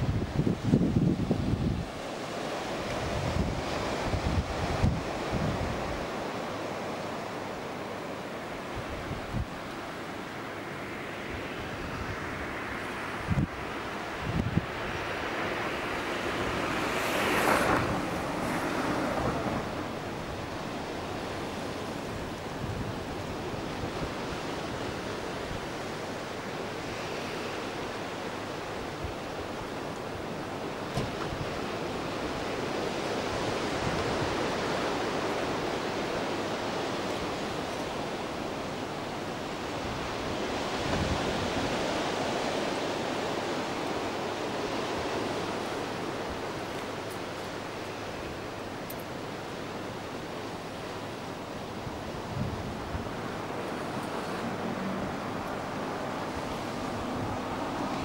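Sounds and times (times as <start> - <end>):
sea surf breaking on shore: 0.0 - 58.0.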